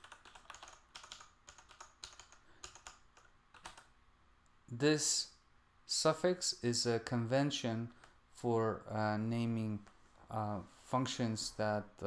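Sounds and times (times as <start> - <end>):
faint keyboard typing: 0.0 - 3.9.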